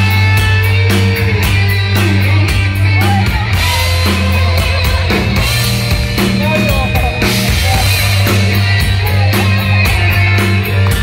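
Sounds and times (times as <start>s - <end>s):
electric guitar bending notes: 0.0s - 11.0s
live heavy metal band: 0.0s - 11.0s.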